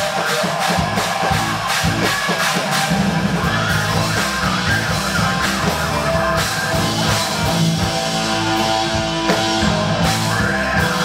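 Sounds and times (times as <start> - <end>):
bass guitar: 0.0 - 11.0
distorted electric guitars: 0.0 - 11.0
drum hits: 0.0 - 11.0.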